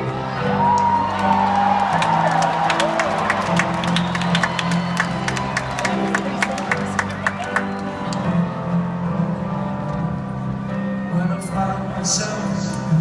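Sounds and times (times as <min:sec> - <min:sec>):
crowd cheering: 0:00.0 - 0:08.4
piano chords over sound system: 0:00.0 - 0:13.0
crowd clapping: 0:00.1 - 0:08.3
crowd whistling: 0:00.5 - 0:08.1.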